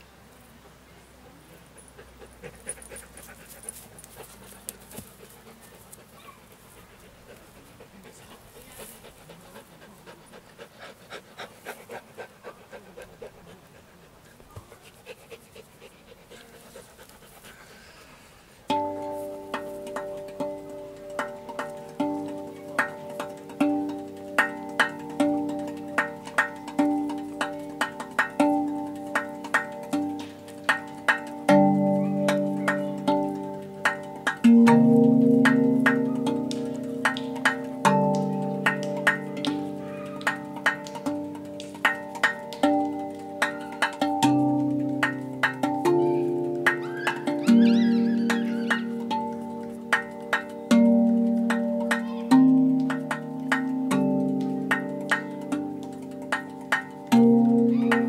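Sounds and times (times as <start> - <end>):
steel tongue drum notes: 0.0 - 58.0
dog panting: 1.5 - 18.6.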